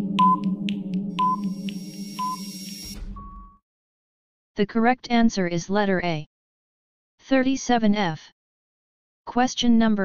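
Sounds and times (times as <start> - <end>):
countdown timer music: 0.0 - 3.5
low electronic drone: 0.0 - 3.5
short beeps and clicks: 0.2 - 0.5, 1.2 - 3.6
low thud: 3.0 - 3.6.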